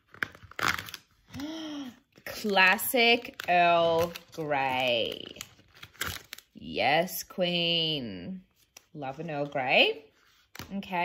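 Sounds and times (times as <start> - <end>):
paper crinkling and scraping: 0.0 - 6.5.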